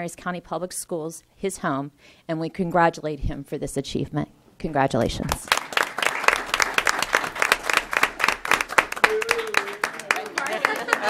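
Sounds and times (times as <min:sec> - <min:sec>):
audience applauding: 0:05.5 - 0:11.0.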